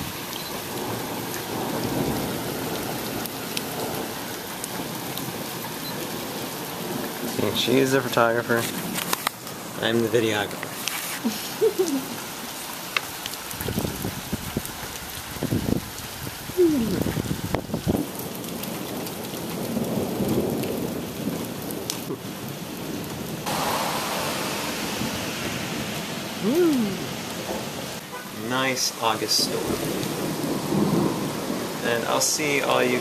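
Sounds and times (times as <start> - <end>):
thunder rumbling: 0.0 - 5.5, 15.3 - 33.0
steady rain: 0.0 - 33.0.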